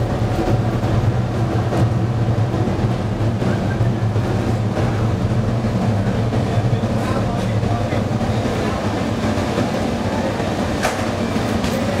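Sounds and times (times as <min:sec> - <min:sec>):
furnace burner and blower rumble: 0:00.0 - 0:12.0.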